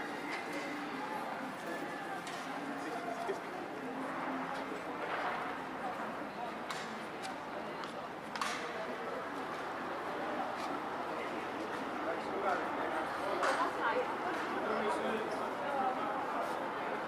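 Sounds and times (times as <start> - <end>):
passers-by talking: 0.0 - 17.0.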